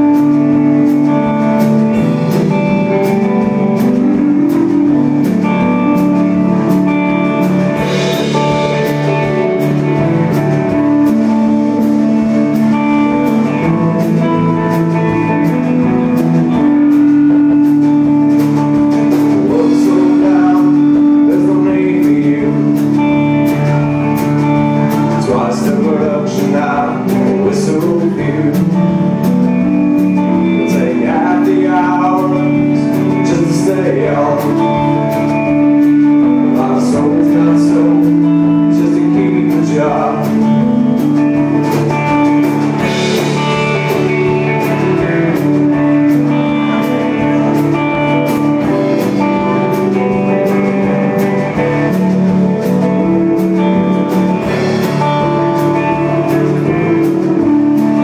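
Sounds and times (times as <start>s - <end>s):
drum kit: 0.0s - 58.0s
electric guitars: 0.0s - 58.0s.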